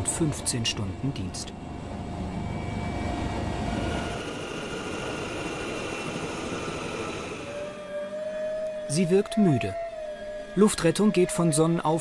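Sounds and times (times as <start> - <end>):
helicopter turbine engine whine: 0.0 - 12.0.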